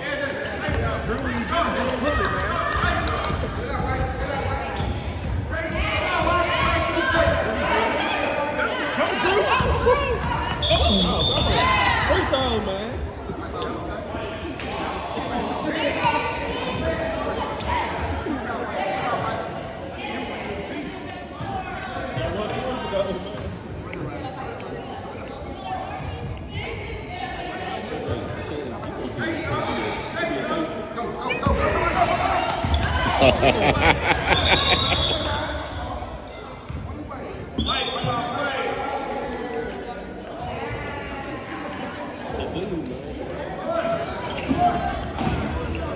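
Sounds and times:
chatter of voices echoing: 0.0 - 45.9.

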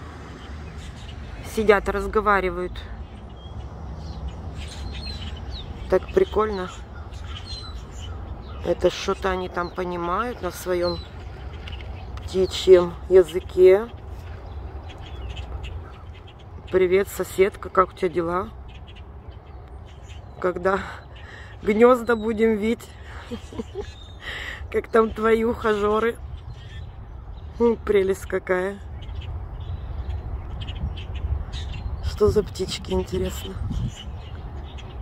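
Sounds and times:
birds calling: 0.0 - 35.0.

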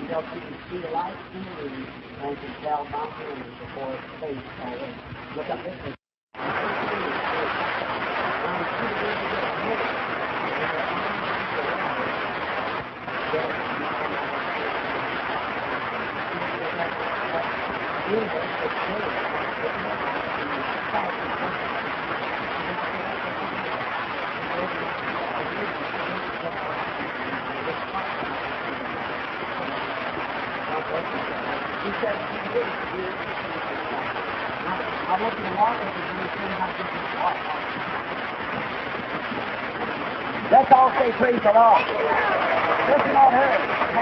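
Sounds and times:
indistinct voices murmuring: 0.0 - 44.0
old recording hiss: 0.0 - 44.0.

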